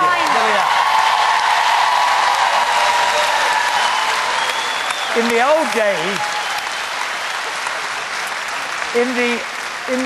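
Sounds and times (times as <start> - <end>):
studio audience applauding: 0.0 - 10.0.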